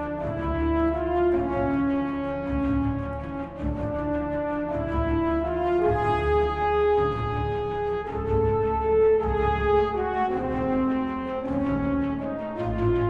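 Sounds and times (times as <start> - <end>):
horns holding long notes: 0.0 - 13.0.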